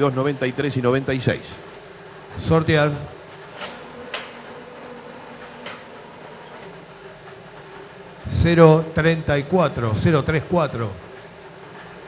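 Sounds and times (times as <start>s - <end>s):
machine humming and rattling: 0.0s - 12.0s.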